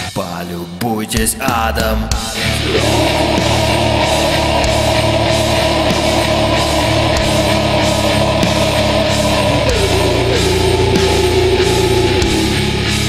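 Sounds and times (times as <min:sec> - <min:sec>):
distorted guitars: 0:00.0 - 0:13.0
drums: 0:00.0 - 0:13.0
long high held note: 0:01.5 - 0:13.0.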